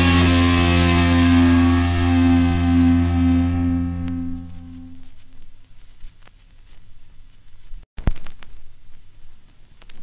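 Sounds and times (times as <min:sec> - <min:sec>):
distorted electric guitar and bass chord: 0:00.0 - 0:05.2.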